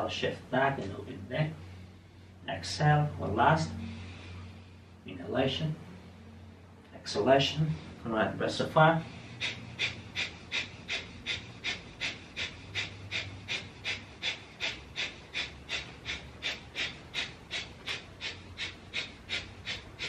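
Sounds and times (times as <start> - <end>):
rapid forceful breaths: 0.0 - 20.0.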